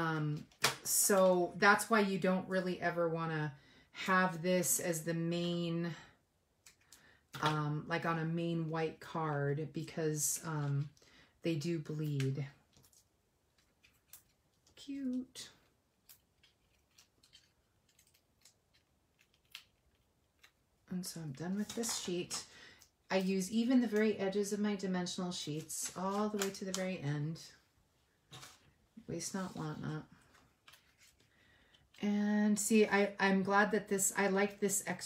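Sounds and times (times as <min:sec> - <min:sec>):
paper rustling: 0:29.4 - 0:32.0.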